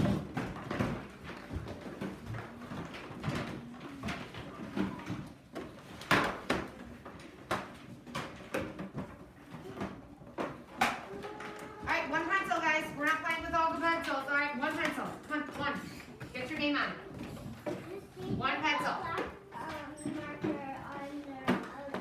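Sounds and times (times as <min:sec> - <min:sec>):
knocks and clatter: 0:00.0 - 0:22.0.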